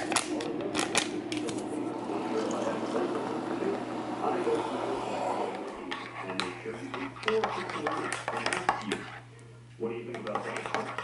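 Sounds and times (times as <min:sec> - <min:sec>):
metal spoon stirring in mug: 0:05.9 - 0:09.3, 0:10.1 - 0:11.0.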